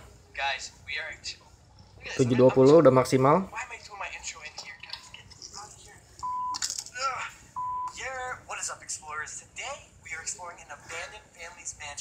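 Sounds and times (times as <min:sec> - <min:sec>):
short steady beeps: 0:06.2 - 0:06.6, 0:07.6 - 0:08.0.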